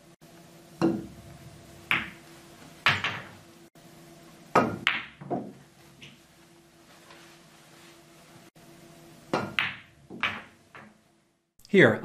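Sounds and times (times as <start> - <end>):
faint steady hum: 0.0 - 12.0
pool balls knocking and clacking: 0.7 - 3.4, 4.5 - 6.2, 9.2 - 11.1.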